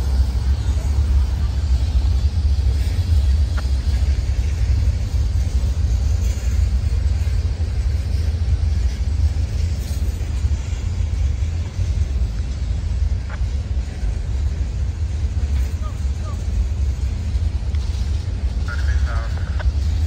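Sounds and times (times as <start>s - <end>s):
freight train rolling past: 0.0s - 20.0s.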